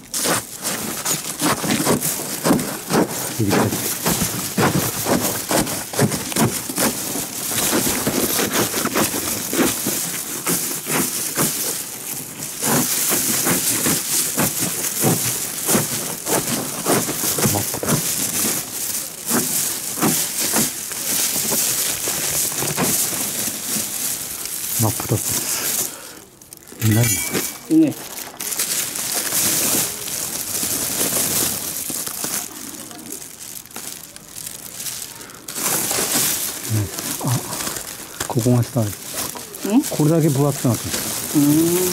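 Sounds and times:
dry paper crackling and crunching: 0:00.0 - 0:41.9
paper rustling: 0:00.0 - 0:41.9.

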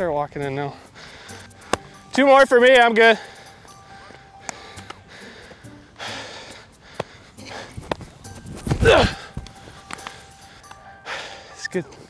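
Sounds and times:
faint background music: 0:00.0 - 0:12.0
baseball smacking into glove: 0:01.7 - 0:01.9.

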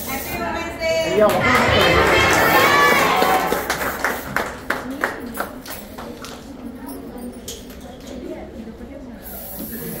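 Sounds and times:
spray can hissing: 0:00.0 - 0:00.4, 0:03.0 - 0:04.5, 0:09.2 - 0:10.0
people talking: 0:00.0 - 0:10.0.

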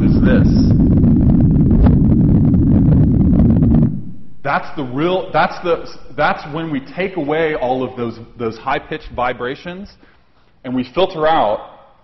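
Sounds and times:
steady low rumble: 0:00.0 - 0:09.4.

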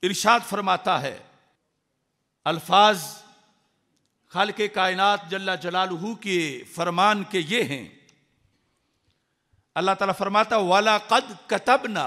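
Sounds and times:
man's amplified speech: 0:00.0 - 0:01.3, 0:02.5 - 0:03.4, 0:04.3 - 0:08.0, 0:09.8 - 0:12.0
faint clicks: 0:03.9 - 0:04.2.

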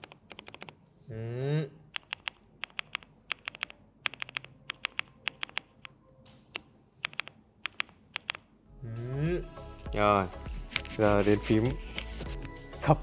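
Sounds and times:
keyboard keys clicking: 0:00.0 - 0:00.8, 0:01.9 - 0:08.5.

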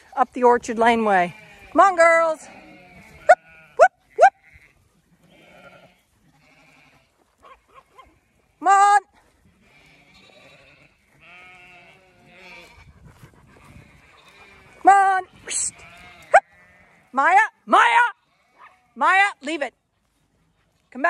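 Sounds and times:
sheep bleating: 0:01.0 - 0:12.9, 0:13.6 - 0:19.4.

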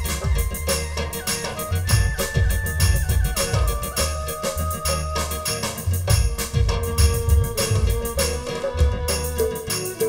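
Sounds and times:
steady bass: 0:00.0 - 0:09.8
electronic drum beats: 0:00.0 - 0:10.0
keyboard notes: 0:00.0 - 0:10.0.

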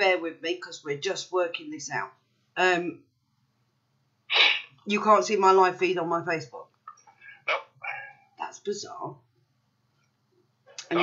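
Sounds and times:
sharp burst of breath: 0:04.3 - 0:04.8.

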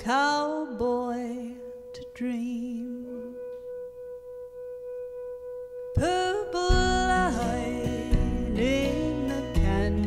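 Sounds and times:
slow country ballad singing: 0:00.0 - 0:04.5, 0:05.8 - 0:10.0.

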